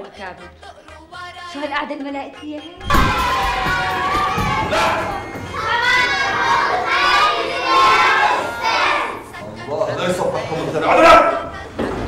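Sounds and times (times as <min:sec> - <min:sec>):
children shouting and cheering: 0:02.8 - 0:09.4.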